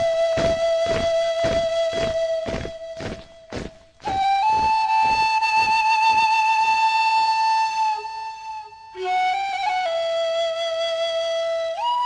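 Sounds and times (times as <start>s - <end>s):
soft drum beats: 0.0s - 6.2s
flute playing: 0.0s - 12.0s.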